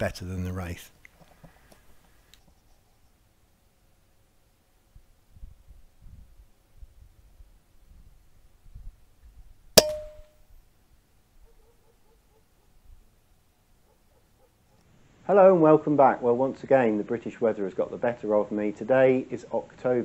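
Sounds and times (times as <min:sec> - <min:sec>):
short ringing tone: 0:09.8 - 0:10.3.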